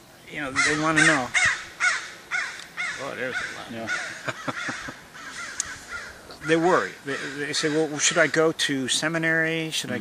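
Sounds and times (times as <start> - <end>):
crow cawing: 0.4 - 8.6.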